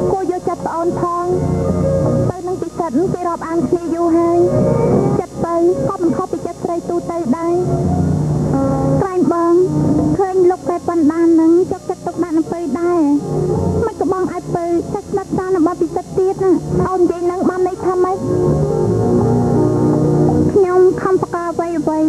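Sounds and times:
bass: 18.2 - 20.6.

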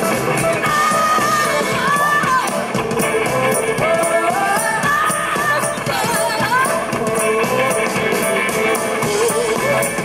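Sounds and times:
drums with cymbal strokes: 0.0 - 10.0
guitar: 0.0 - 10.0.

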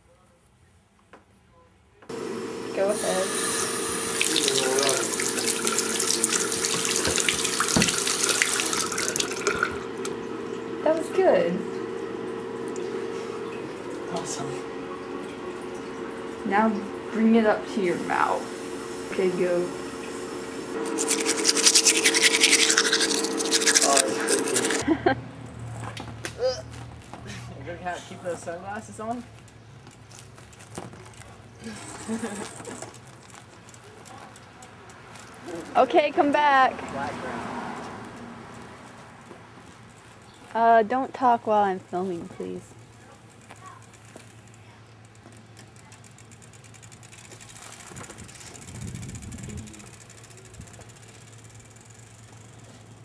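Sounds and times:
bicycle riding on asphalt: 26.8 - 53.0
steady low hum: 40.6 - 53.0.

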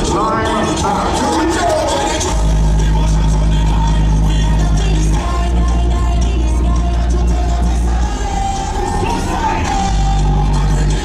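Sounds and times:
loud music through sound system: 0.0 - 11.0
heavy held bass note: 8.6 - 10.9.

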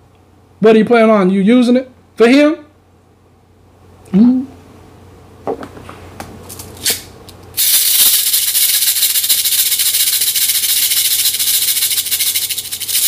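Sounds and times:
cabasa rattling: 7.6 - 13.0.

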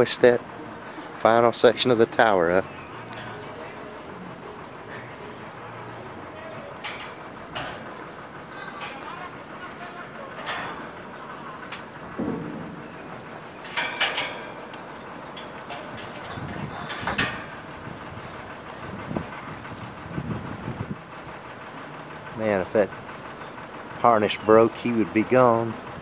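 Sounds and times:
faint distant voices: 0.0 - 15.0
outdoor background noise: 0.0 - 26.0
sharp clicks and knocks: 6.6 - 9.2, 10.3 - 18.9.

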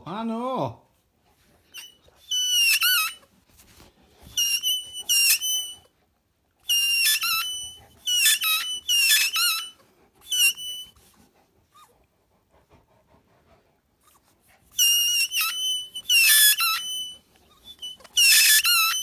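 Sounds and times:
squeaky ball squeaking: 1.7 - 3.3, 4.2 - 5.9, 6.6 - 11.0, 14.1 - 19.0.

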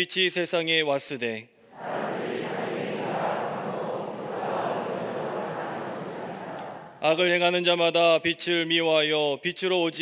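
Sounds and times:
congregation reading aloud in unison: 0.3 - 10.0.

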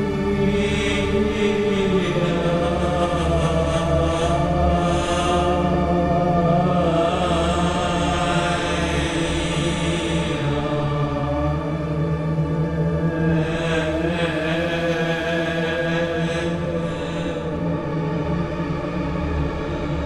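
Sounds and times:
synthesizer drone: 0.0 - 20.0.

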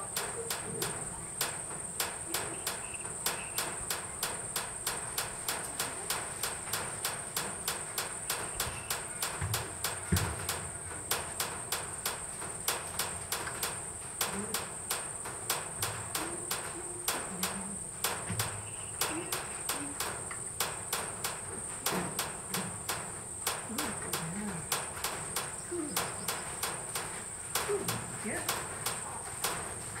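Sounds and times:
insect ticks: 0.0 - 30.0
insects buzzing: 0.0 - 30.0.

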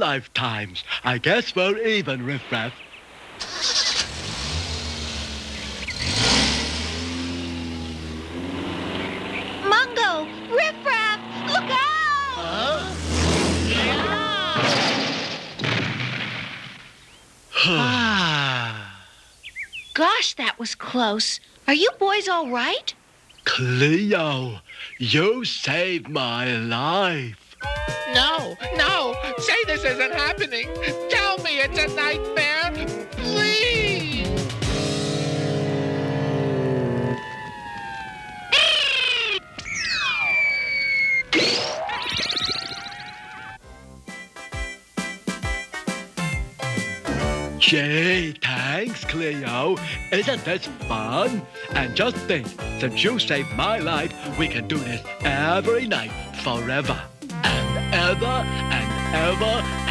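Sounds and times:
cartoon car crash: 3.3 - 7.3, 12.6 - 17.0, 34.3 - 43.6
deep bass notes: 4.2 - 10.6, 12.3 - 14.5, 28.2 - 38.7, 46.2 - 59.9
whirling cartoon sound effect: 27.6 - 34.6, 36.8 - 43.6
bouncy cartoon music: 27.6 - 35.4, 43.6 - 59.9.

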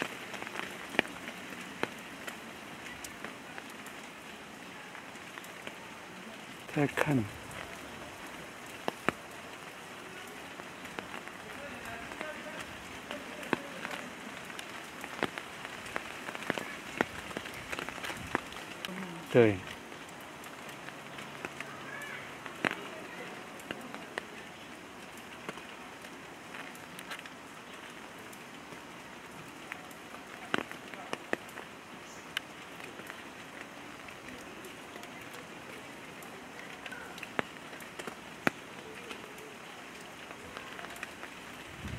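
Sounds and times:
raindrops ticking: 0.0 - 41.9
steady rain: 0.0 - 41.9.

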